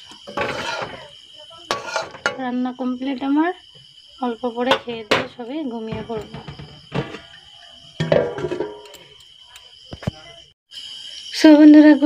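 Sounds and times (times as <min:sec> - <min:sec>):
dishes and utensils clinking: 0:00.1 - 0:01.1, 0:01.7 - 0:02.5, 0:04.7 - 0:07.4, 0:08.0 - 0:09.2.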